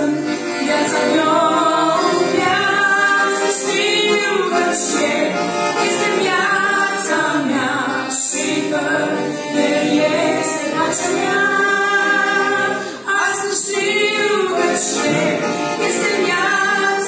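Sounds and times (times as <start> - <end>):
piano accordion: 0.0 - 17.0
women singing a hymn in harmony: 0.0 - 17.0.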